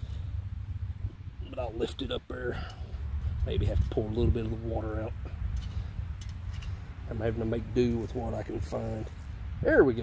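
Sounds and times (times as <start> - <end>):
wind rumbling on microphone: 0.0 - 2.2, 2.8 - 10.0.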